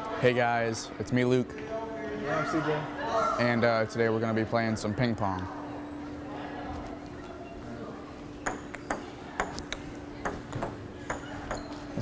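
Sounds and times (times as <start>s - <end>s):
ping-pong ball hits: 8.4s - 11.8s.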